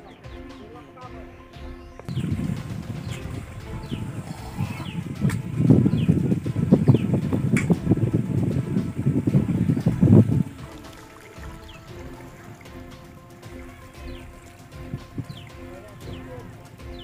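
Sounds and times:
high bird chirps: 0.0 - 12.9, 13.5 - 17.0
faint background music: 0.0 - 17.0
wind buffeting microphone: 2.0 - 17.0.

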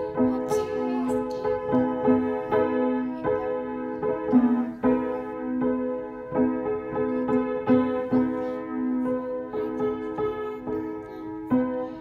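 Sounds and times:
child playing upright piano: 0.0 - 12.0.

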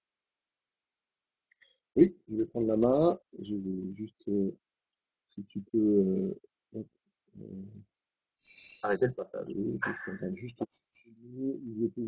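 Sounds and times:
person hesitation sound: 2.0 - 4.5, 5.4 - 6.4, 8.8 - 10.7, 11.3 - 12.0
person speaking word: 2.0 - 4.5, 5.4 - 6.4, 7.4 - 7.8, 8.6 - 10.6, 11.3 - 12.0.

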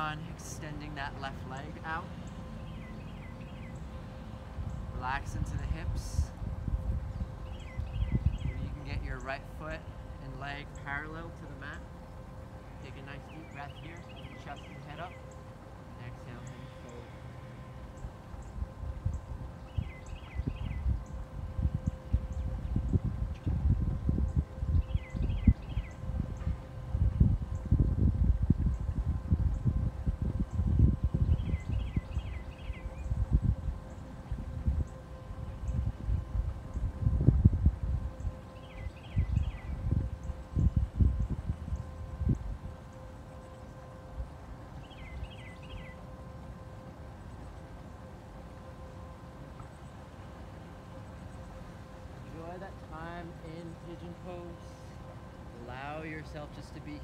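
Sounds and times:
wind buffeting microphone: 0.0 - 50.0
faint steady hum: 0.0 - 57.0
bird high notes: 7.1 - 23.5.

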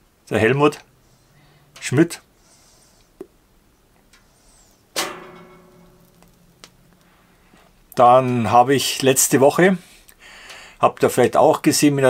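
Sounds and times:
struck ringing note: 5.0 - 7.0.

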